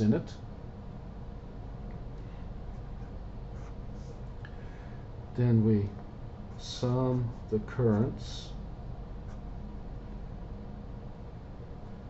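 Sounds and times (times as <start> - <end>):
marker writing on paper: 2.7 - 4.3.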